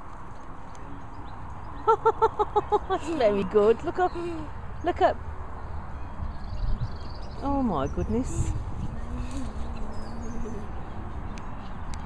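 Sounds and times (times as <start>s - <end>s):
person laughing: 1.9s - 3.2s.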